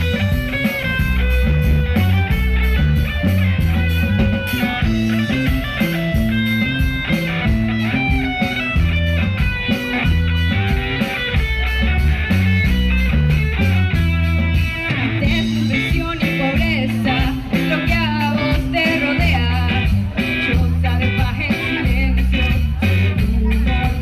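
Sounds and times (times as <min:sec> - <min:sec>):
bass line: 0:00.0 - 0:24.0
drums and cymbals: 0:00.0 - 0:24.0
guitar melody: 0:00.0 - 0:24.0.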